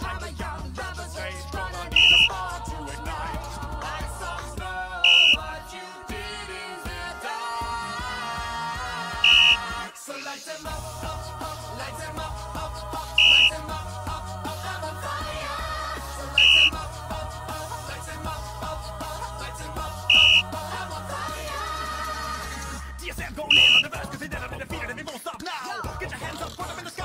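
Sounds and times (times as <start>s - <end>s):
pop music with steady beat: 0.0s - 27.0s
referee whistle blast: 2.0s - 2.3s, 5.0s - 5.4s, 9.2s - 9.6s, 13.2s - 13.6s, 16.4s - 16.8s, 20.1s - 20.4s, 23.5s - 23.9s.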